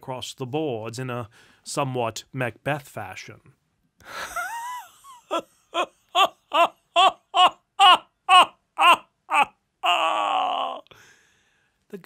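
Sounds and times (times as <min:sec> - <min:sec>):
man laughing theatrically: 0:04.1 - 0:10.8.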